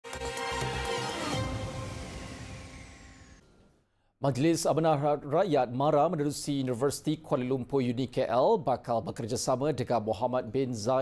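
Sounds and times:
held chord of theme music: 0:00.0 - 0:03.6
high sweep falling in pitch: 0:00.7 - 0:03.8.

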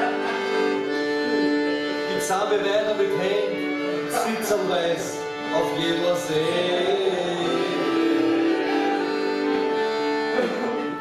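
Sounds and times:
accordion chords: 0:00.0 - 0:11.0.

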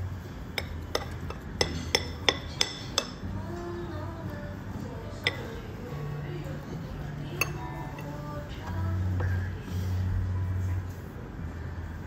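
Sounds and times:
metal spoon clinking on ceramic bowl: 0:00.6 - 0:03.2, 0:05.1 - 0:05.7, 0:07.3 - 0:08.2.

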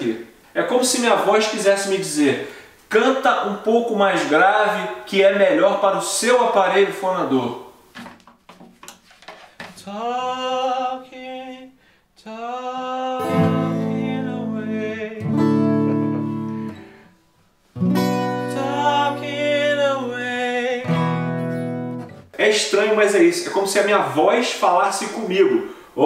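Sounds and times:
soft knocks: 0:07.9 - 0:09.8
man singing: 0:09.8 - 0:16.7, 0:18.2 - 0:21.3
acoustic guitar strumming: 0:13.2 - 0:22.4.

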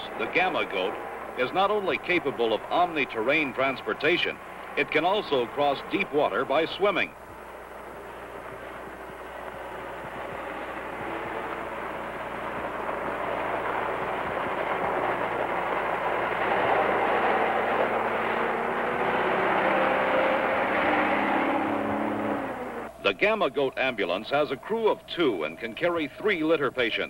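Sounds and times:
diesel engine running under load: 0:00.0 - 0:26.6.

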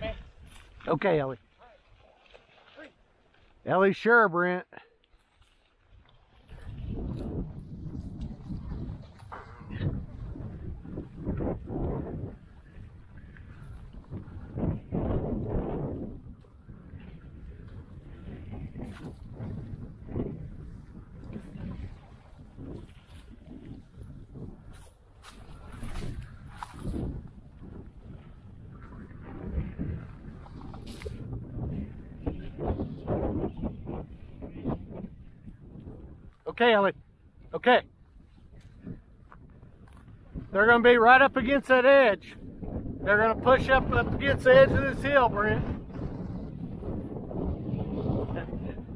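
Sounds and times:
footsteps through dry brush: 0:21.5 - 0:27.5.

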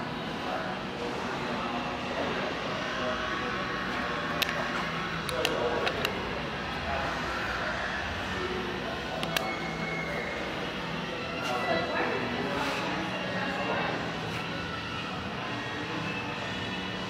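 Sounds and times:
sharp clicks: 0:09.2 - 0:09.5.

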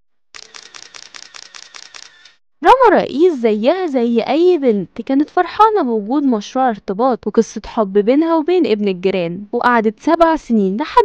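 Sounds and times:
narrator speaking: 0:02.6 - 0:11.0.

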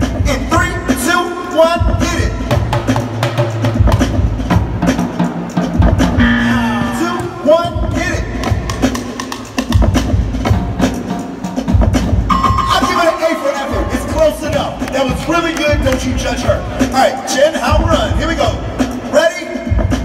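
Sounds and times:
loud backing music: 0:00.0 - 0:20.0
drums and barrels struck with sticks: 0:01.8 - 0:17.0.

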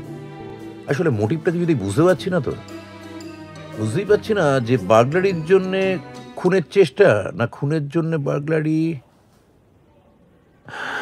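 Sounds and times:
man's sharp intake of breath: 0:10.7 - 0:11.0.

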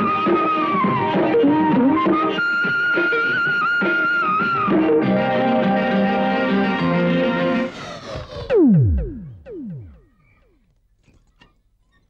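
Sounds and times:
falling synthesizer pitch swoops: 0:07.3 - 0:10.3.

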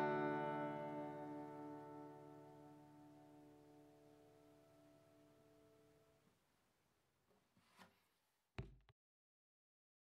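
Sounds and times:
acoustic guitar chord: 0:00.0 - 0:05.5
sharp knock of device handling: 0:08.6 - 0:08.9.

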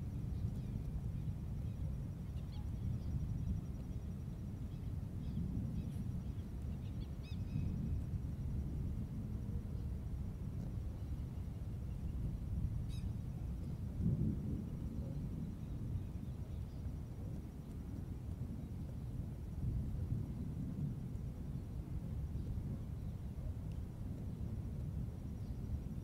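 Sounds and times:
faint click: 0:23.6 - 0:24.3.

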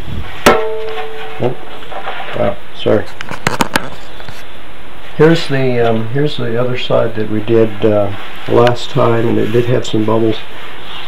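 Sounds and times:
hard object knock ringing: 0:00.5 - 0:01.6.

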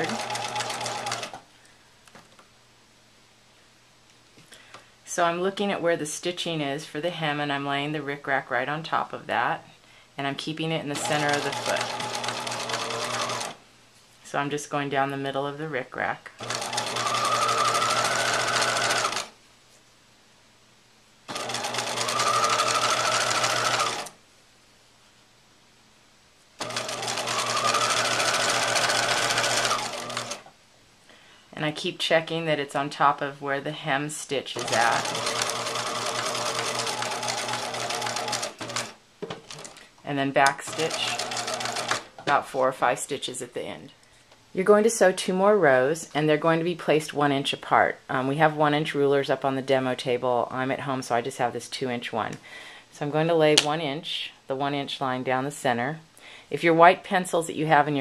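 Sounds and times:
sewing machine stitching: 0:00.0 - 0:01.4, 0:10.9 - 0:13.6, 0:16.4 - 0:19.3, 0:21.3 - 0:24.2, 0:26.6 - 0:30.5, 0:34.6 - 0:39.8, 0:40.4 - 0:42.4.

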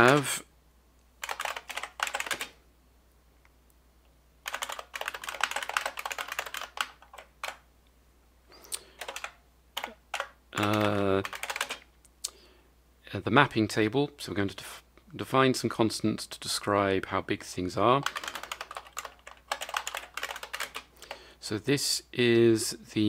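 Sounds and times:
typing on computer keyboard: 0:00.0 - 0:00.3, 0:01.2 - 0:02.6, 0:04.4 - 0:07.6, 0:08.9 - 0:11.9, 0:18.0 - 0:20.9.

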